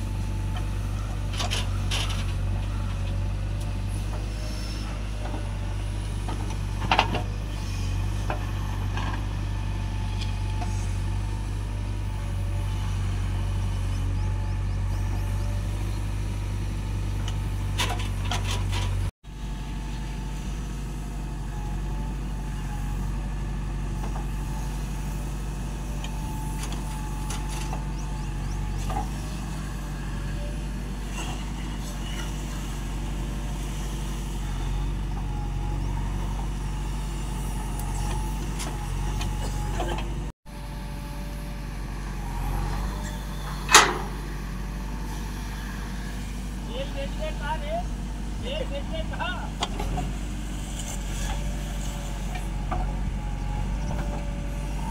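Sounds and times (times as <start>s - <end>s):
diesel engine running: 0.0s - 54.9s.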